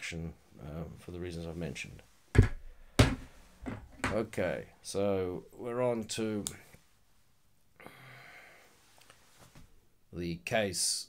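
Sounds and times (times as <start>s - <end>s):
knives knocking on hard desk: 2.4s - 4.2s.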